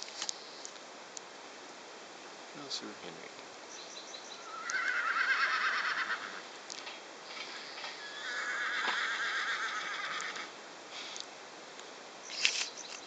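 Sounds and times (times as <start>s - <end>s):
horse whinnying: 4.4s - 6.4s, 7.4s - 10.5s.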